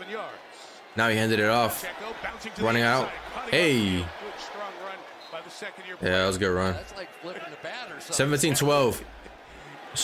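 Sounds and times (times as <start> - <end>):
faint sports commentary: 0.0 - 10.0.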